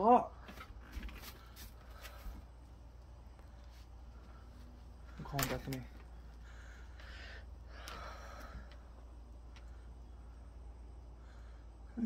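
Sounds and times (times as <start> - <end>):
distant train rumble: 1.5 - 11.9.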